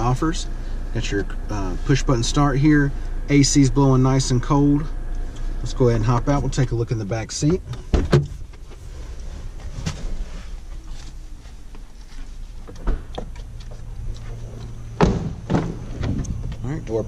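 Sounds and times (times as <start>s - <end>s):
car engine hum: 0.0s - 17.0s
car door thunk: 7.5s - 8.6s, 14.5s - 16.9s.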